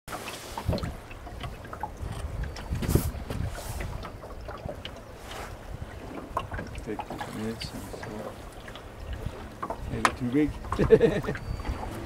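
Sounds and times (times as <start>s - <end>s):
small splashing clicks: 0.1s - 5.1s
choppy sea water: 0.1s - 12.0s
wind buffeting microphone: 0.5s - 12.0s.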